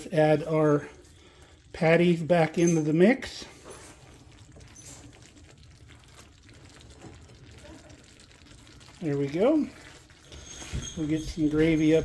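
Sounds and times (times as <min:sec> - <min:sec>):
gravy simmering: 0:00.0 - 0:12.0
spatula ticking in gravy: 0:04.0 - 0:10.4.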